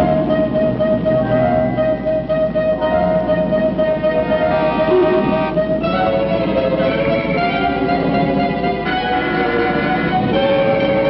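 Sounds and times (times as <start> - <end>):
orchestral cartoon music: 0.0 - 11.0.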